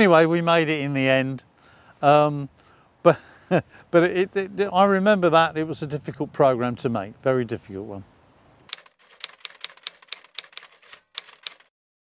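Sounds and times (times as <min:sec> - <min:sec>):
typewriter key clicks: 0:08.7 - 0:11.7.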